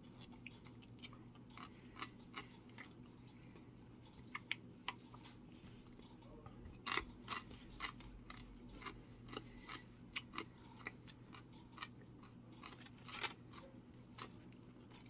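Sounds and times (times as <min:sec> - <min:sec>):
man chewing crunchy chips: 0:00.0 - 0:06.1, 0:06.7 - 0:15.0.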